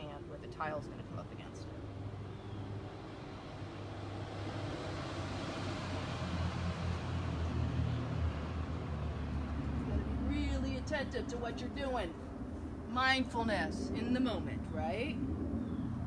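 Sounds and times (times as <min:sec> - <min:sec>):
vehicle engine rumble: 0:00.0 - 0:12.9
road noise rush: 0:00.0 - 0:16.0.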